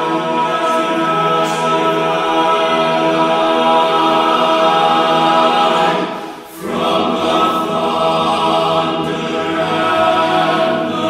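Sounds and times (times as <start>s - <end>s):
men's a cappella chorus singing: 0.0s - 11.0s.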